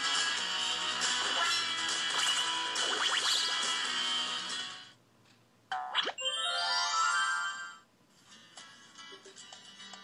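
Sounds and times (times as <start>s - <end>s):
bright electronic chime jingle: 6.2s - 7.8s.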